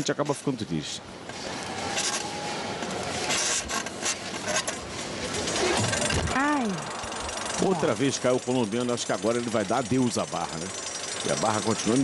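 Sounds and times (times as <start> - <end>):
arena crowd noise: 1.0 - 8.4
steel bar creaking and rattling: 3.2 - 12.0.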